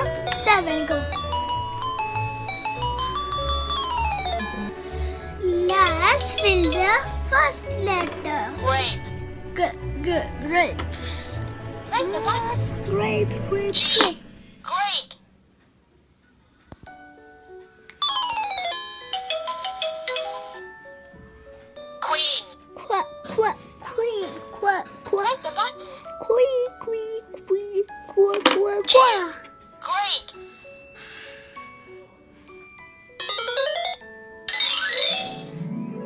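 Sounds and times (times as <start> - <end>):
toy laptop beeping jingle: 18.0 - 20.6, 33.2 - 35.7.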